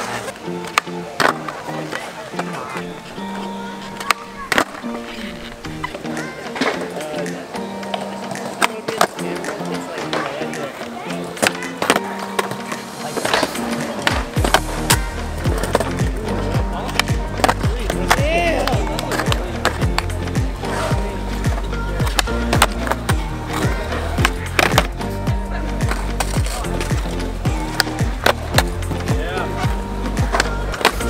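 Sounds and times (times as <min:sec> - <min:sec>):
skateboard clacking and landing: 0:00.0 - 0:31.0
skateboard tail popping: 0:00.0 - 0:31.0
background music with heavy bass: 0:04.8 - 0:31.0.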